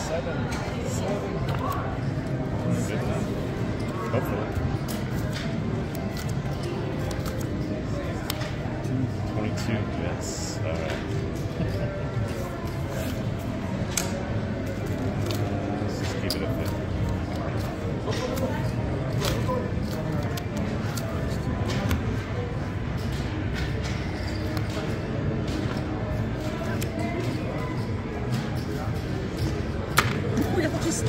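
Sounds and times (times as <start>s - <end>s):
casino background music: 0.0s - 31.0s
chatter: 0.0s - 31.0s
cards and chips clicking: 4.3s - 8.9s, 10.7s - 30.5s.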